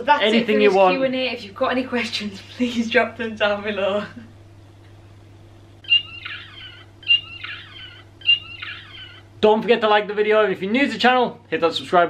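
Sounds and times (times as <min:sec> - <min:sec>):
steady low hum: 0:00.0 - 0:12.0
dog whining: 0:05.8 - 0:09.4.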